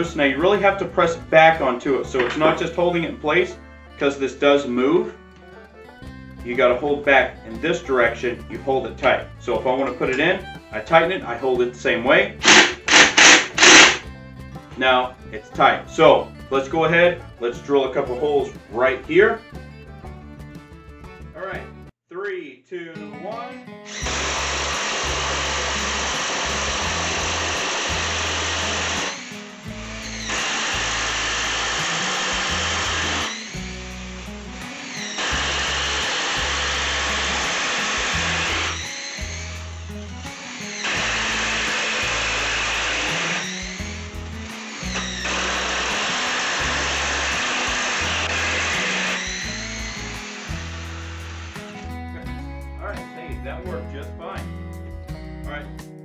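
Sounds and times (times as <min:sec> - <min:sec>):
background music: 0:00.0 - 0:21.9, 0:22.8 - 0:56.0
impact driver drilling into wood: 0:12.4 - 0:14.1, 0:23.9 - 0:51.8.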